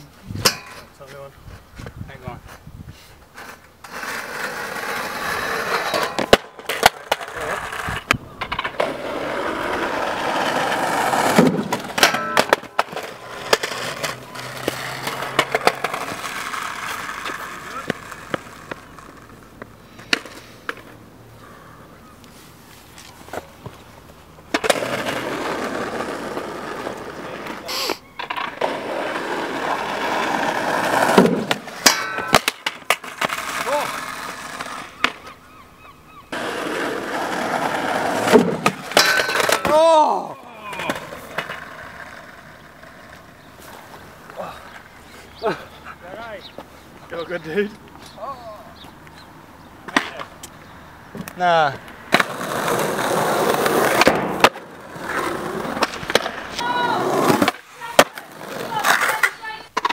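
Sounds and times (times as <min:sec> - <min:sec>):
skateboard wheels rolling on tarmac: 0:00.0 - 0:59.9
skateboard clacking on rail: 0:05.6 - 0:19.2, 0:36.4 - 0:39.8.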